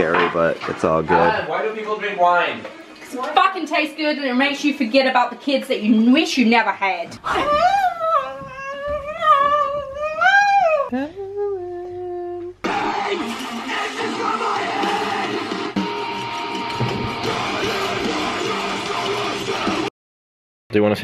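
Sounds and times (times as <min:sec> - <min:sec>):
person singing wavering notes: 0:10.6 - 0:12.6.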